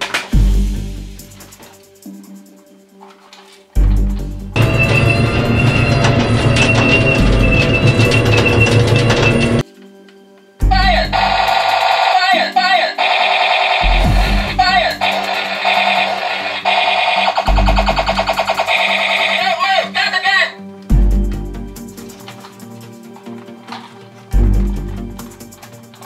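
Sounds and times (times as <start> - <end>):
steady high tone: 4.6 - 9.6
toy electronic battle sounds: 4.6 - 9.6, 10.8 - 20.5.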